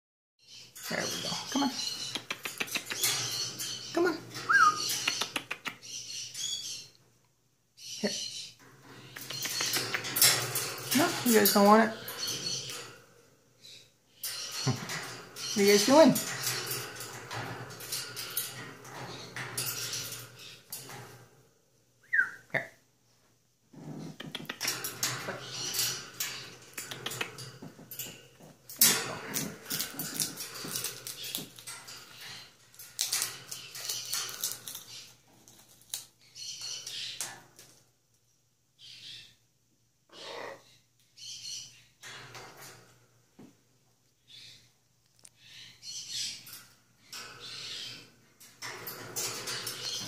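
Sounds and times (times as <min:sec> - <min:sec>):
beaks and claws tapping metal bars: 0:00.7 - 0:06.9, 0:08.6 - 0:13.3, 0:14.2 - 0:21.5, 0:24.1 - 0:37.8, 0:46.3 - 0:50.0
macaws making rough calls: 0:40.1 - 0:40.6.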